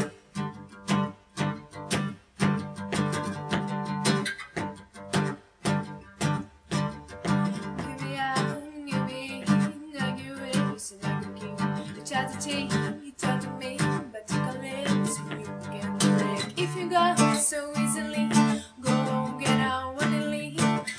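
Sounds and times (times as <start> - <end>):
acoustic guitar strumming: 0.0 - 20.9
woman singing: 7.5 - 20.9.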